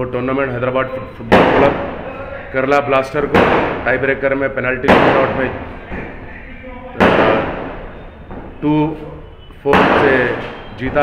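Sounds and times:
sudden sharp bang: 7.0 - 8.6, 9.7 - 11.0.

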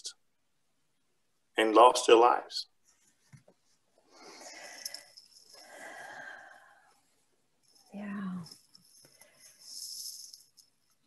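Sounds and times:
person breathing: 4.1 - 7.0.

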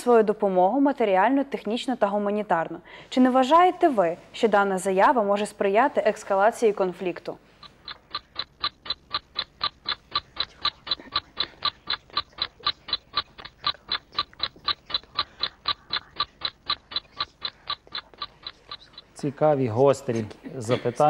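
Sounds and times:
countdown timer ticking: 7.6 - 19.3.

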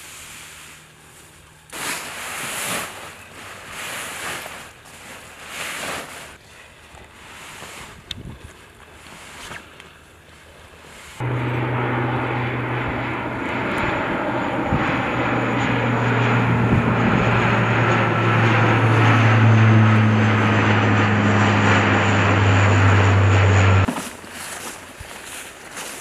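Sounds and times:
faint wind: 0.0 - 26.0
propeller aircraft flying overhead: 11.2 - 25.0.

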